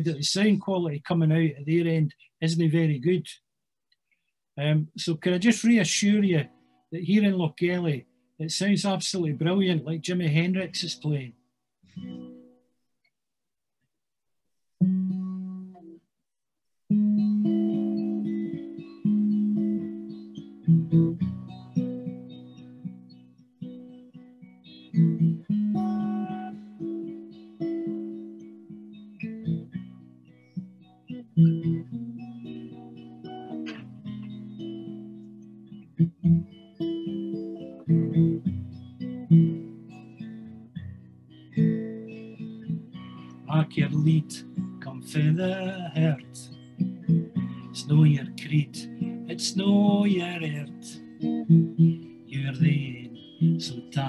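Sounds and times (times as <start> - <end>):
guitar strumming chords: 16.9 - 54.0.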